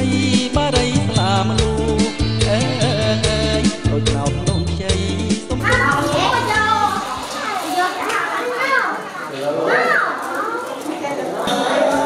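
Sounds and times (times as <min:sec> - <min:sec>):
children calling and chattering: 0:00.9 - 0:12.0.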